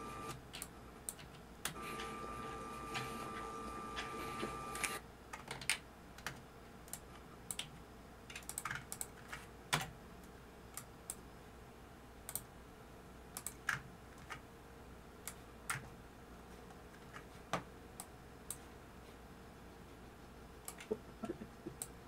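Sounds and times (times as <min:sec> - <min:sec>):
computer keyboard keystrokes: 0:04.8 - 0:07.7, 0:08.3 - 0:09.9, 0:13.4 - 0:14.4, 0:20.7 - 0:21.0.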